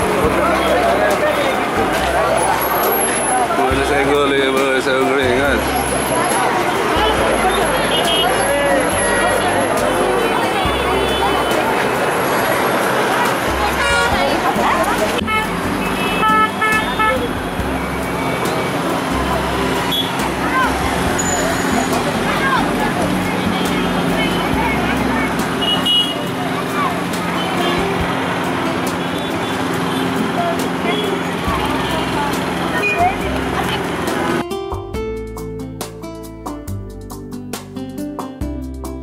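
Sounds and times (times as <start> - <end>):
crowd chatter: 0.0 - 34.5
road traffic: 0.0 - 38.6.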